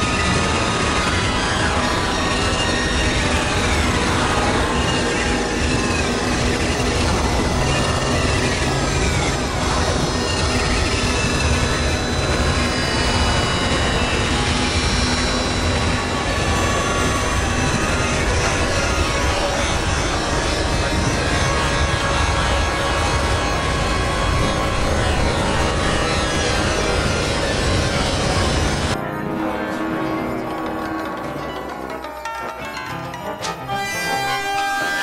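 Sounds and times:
synthesizer drone: 0.0 - 35.0.

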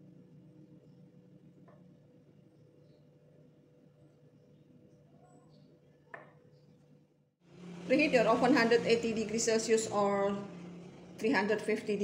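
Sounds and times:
woman talking: 7.9 - 10.6, 11.2 - 12.0.

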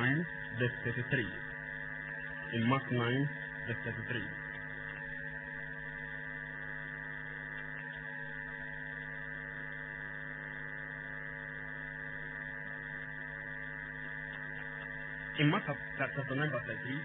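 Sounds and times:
electrical hum: 0.0 - 17.0.

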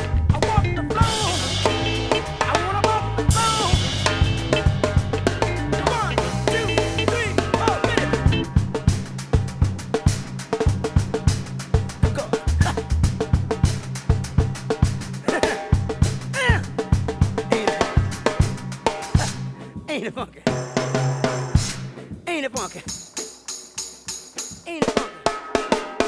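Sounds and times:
backing track with bass: 0.0 - 19.7
drum kit funk groove: 0.0 - 26.0.

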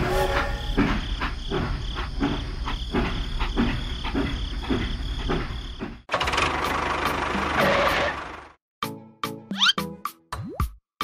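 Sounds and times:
music: 8.8 - 11.0.

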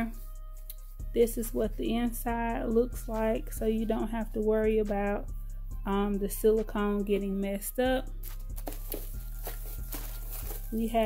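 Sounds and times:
soft background music: 0.0 - 11.0
paper shred rustling: 8.2 - 11.0.

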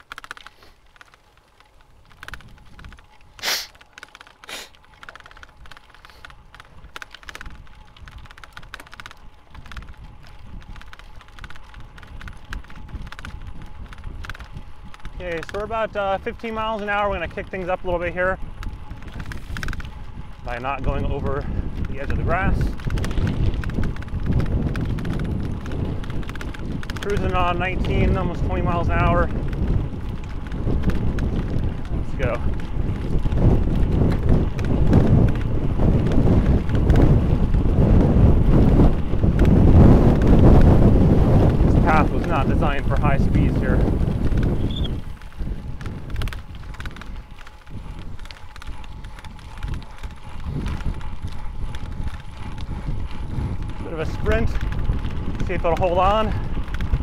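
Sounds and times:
bicycle rattling over dirt: 0.0 - 57.0
bike tyres crunching on gravel: 0.0 - 57.0
wind buffeting microphone: 0.0 - 57.0.

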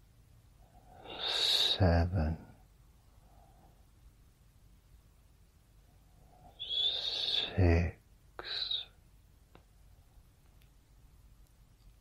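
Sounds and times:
man's breathy voice drawing out word: 1.0 - 2.6, 6.6 - 9.0.

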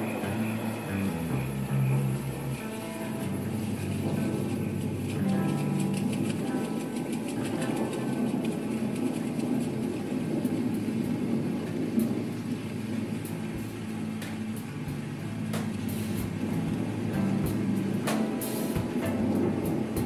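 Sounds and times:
blues band playing: 0.0 - 9.7, 13.3 - 20.0.

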